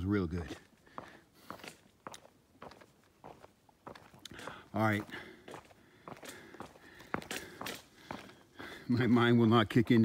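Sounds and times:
footsteps on a trail: 0.0s - 10.0s.

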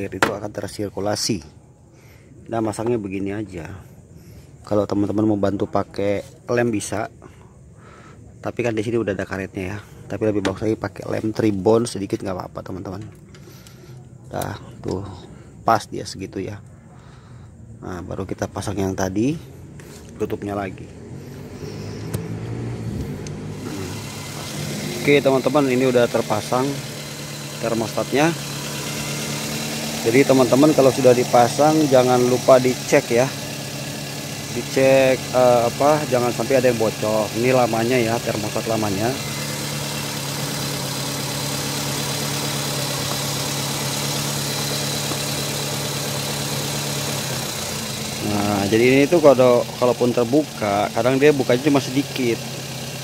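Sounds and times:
car engine idling: 16.6s - 53.0s
sharp click: 22.0s - 22.3s.

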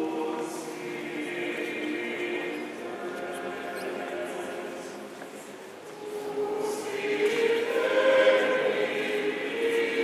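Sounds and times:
choir chanting: 0.0s - 5.1s, 5.9s - 10.0s.

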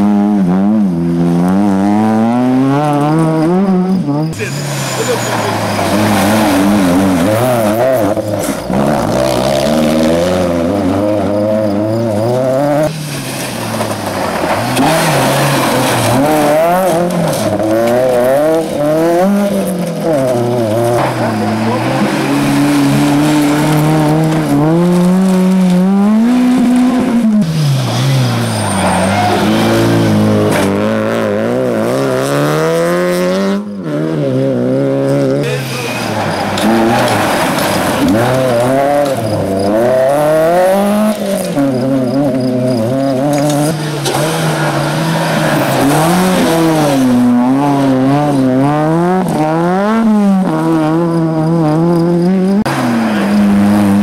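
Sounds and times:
rally car engines revving: 0.0s - 54.0s
tyres hissing on gravel: 4.4s - 7.2s, 12.8s - 17.7s, 35.5s - 39.6s.

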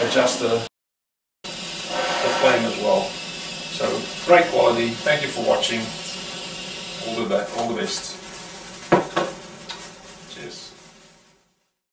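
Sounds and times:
sparkler fizzing crackle: 1.5s - 11.8s
torch knocking on countertop: 8.9s - 9.4s.

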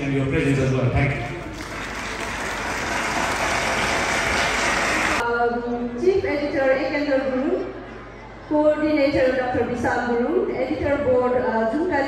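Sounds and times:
audience applauding: 1.4s - 5.2s.

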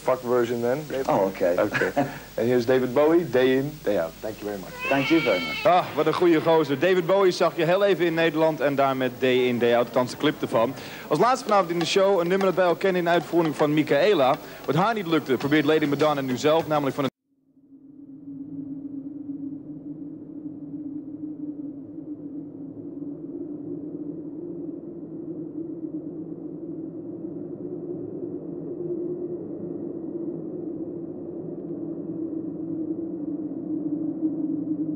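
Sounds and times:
low ambient music drone: 17.4s - 34.9s.

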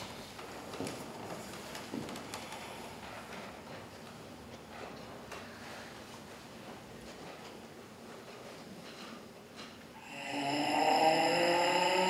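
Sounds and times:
person singing a long held note: 10.0s - 12.0s.

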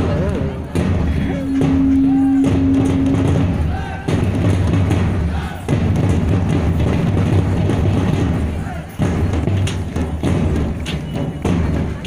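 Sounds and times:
barrel drums rumbling: 0.0s - 12.0s.

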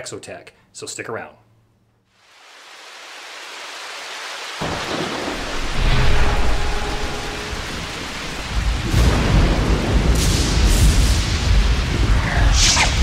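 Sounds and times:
steady rain hiss: 2.0s - 13.0s
deep thunder roll: 4.6s - 13.0s.

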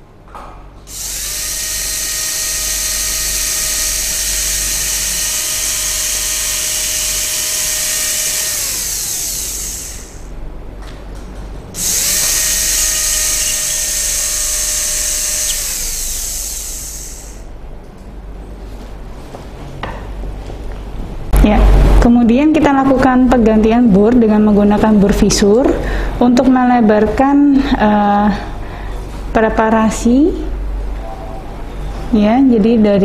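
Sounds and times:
dental drill whining: 0.9s - 10.3s, 11.8s - 17.5s.

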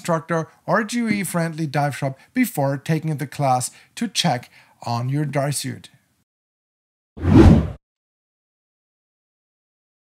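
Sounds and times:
whoosh sound effect: 7.2s - 7.8s.

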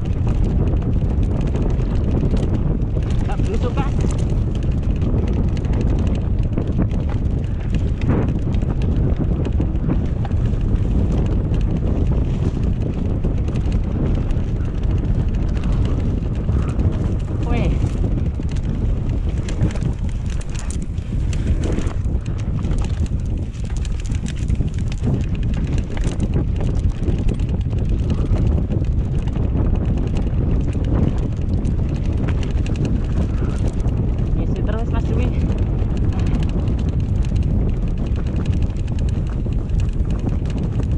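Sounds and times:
bike rattling and clicking: 0.0s - 40.9s
tyres on dirt trail: 0.0s - 40.9s
wind on microphone: 0.0s - 40.9s.

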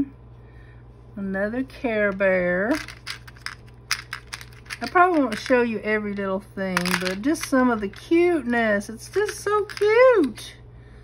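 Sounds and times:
small metal charms clicking: 2.7s - 5.6s, 6.8s - 8.0s, 9.1s - 10.0s.

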